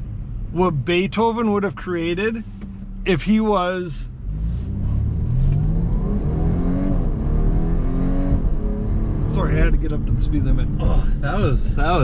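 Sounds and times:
car engine accelerating hard: 0:00.7 - 0:12.0.

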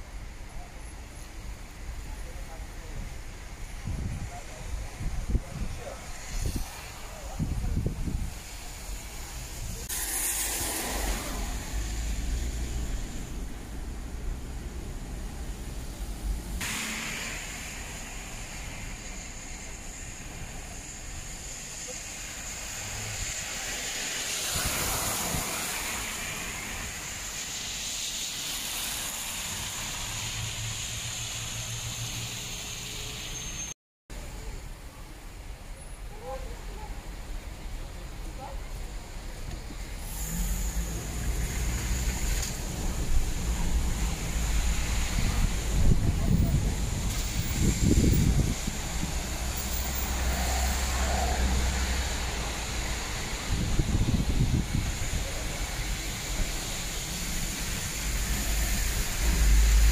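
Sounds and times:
vehicles passing: 0:00.0 - 0:33.7, 0:36.0 - 0:59.9
tyres hissing on wet road: 0:00.0 - 0:59.9.

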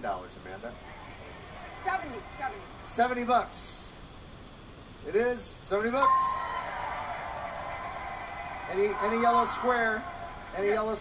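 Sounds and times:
audience cheering and clapping: 0:00.8 - 0:03.0, 0:06.1 - 0:11.0
bell chime: 0:06.0 - 0:06.7.

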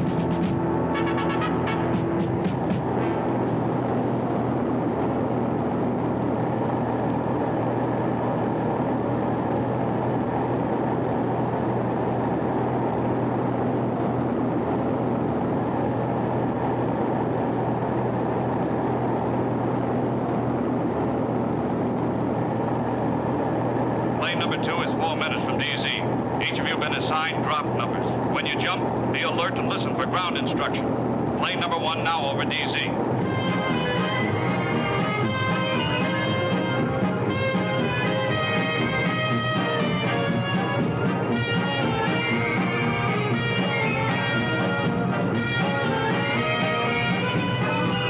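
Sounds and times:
music: 0:00.0 - 0:04.2, 0:32.7 - 0:48.0
plane engines droning in cabin: 0:00.0 - 0:48.0.

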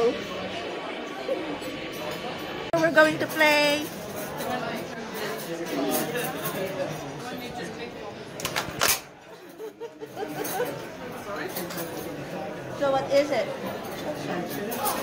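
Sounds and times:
diners chattering: 0:00.0 - 0:15.0.

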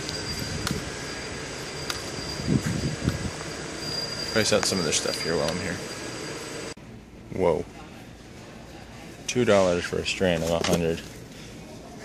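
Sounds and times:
store hum and rumble: 0:00.0 - 0:12.0.

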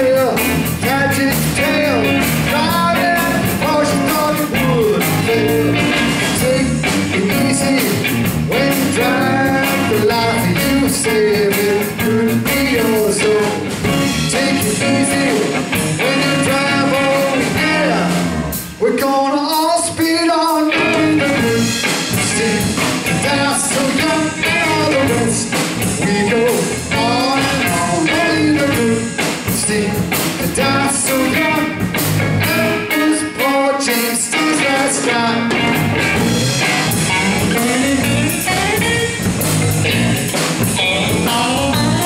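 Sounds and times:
electric guitar lead lines: 0:00.0 - 0:18.9, 0:20.7 - 0:42.0
drum kit: 0:00.0 - 0:42.0
electric bass: 0:00.0 - 0:42.0.

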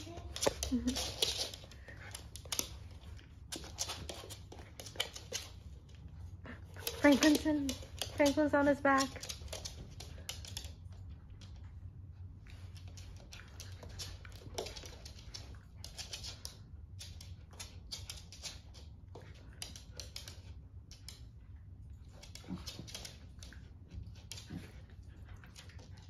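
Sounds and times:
dog claws scrabbling on floor: 0:00.0 - 0:11.6, 0:12.5 - 0:21.4, 0:22.0 - 0:26.0.

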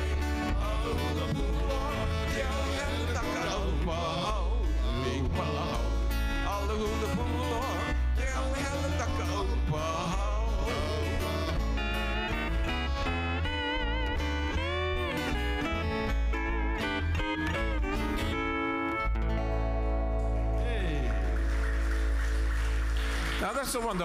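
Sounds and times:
electric bass: 0:00.0 - 0:23.9
acoustic guitar: 0:00.0 - 0:24.0.

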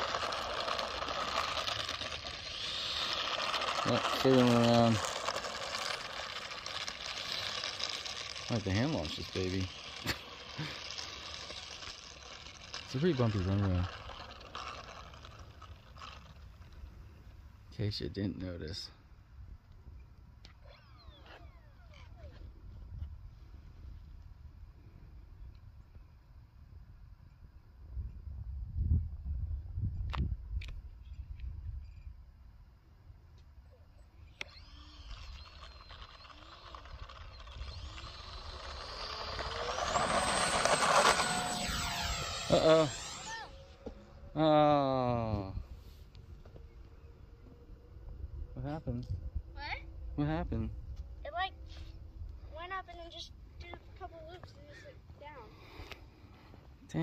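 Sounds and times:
faint falling whine: 0:19.8 - 0:26.2, 0:33.4 - 0:53.8.

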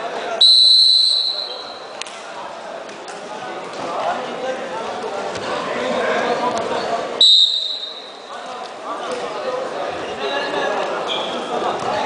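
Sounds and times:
crowd murmur: 0:00.0 - 0:12.0
referee's whistle blast: 0:00.4 - 0:01.9, 0:07.2 - 0:08.2.

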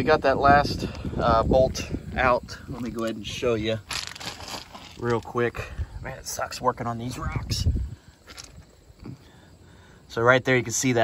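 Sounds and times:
footsteps crunching on gravel: 0:02.7 - 0:05.5
scrape on gravel: 0:02.8 - 0:05.4.

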